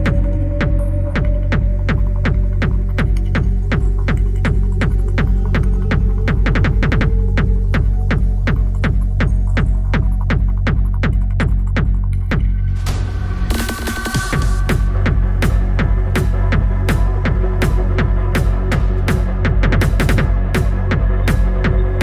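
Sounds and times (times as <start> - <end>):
dark electronic dance music: 0.0 - 22.0.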